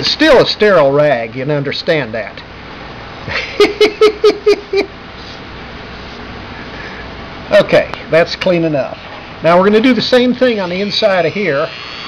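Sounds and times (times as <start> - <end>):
man chuckling: 3.2 - 5.0.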